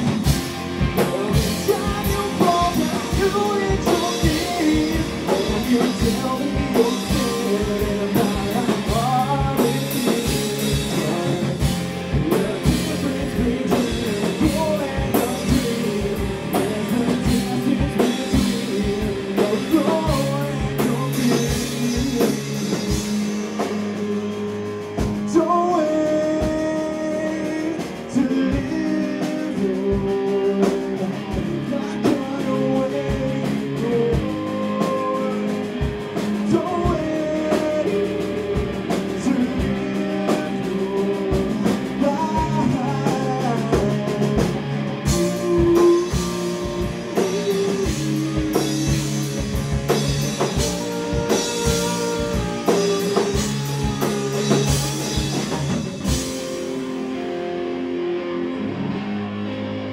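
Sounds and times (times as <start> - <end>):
man singing: 0.0 - 56.6
bass guitar: 0.0 - 59.9
drum kit: 0.0 - 59.9
electric guitar: 0.0 - 59.9.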